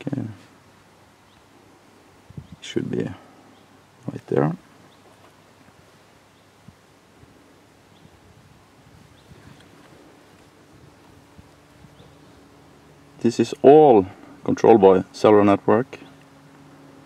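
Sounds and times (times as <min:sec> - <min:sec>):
faint steady hum: 0:00.0 - 0:17.0.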